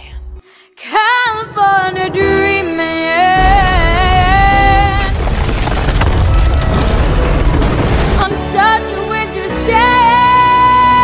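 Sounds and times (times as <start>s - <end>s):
deep continuous rumble: 2.4s - 8.6s
crashing and crackling debris: 3.4s - 9.3s.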